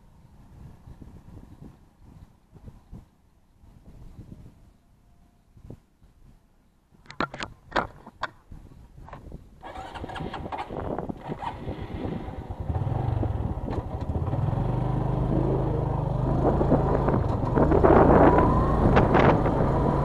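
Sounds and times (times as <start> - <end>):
motorcycle engine starting and running: 9.6 - 20.0.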